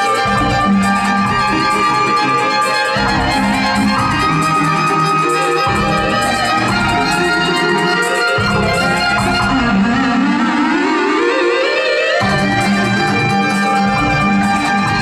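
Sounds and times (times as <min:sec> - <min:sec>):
low bass notes: 0:00.0 - 0:10.7, 0:12.2 - 0:15.0
looped violin lines: 0:00.0 - 0:15.0.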